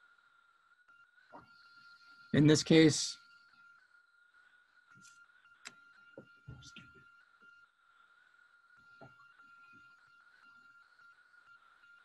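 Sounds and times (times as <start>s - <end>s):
thin steady high tone: 0.0s - 12.0s.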